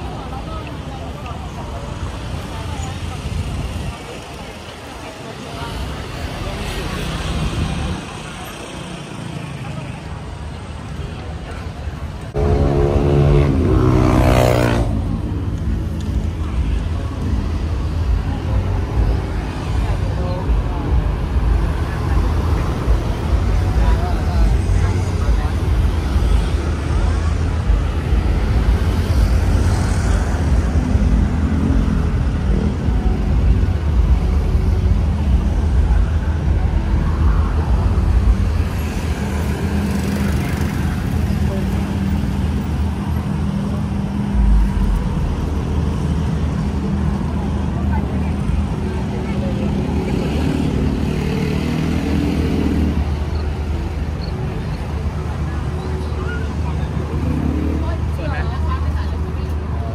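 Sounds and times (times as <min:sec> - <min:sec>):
people chatting: 0:00.0 - 0:59.9
road traffic rumble: 0:00.0 - 0:59.9.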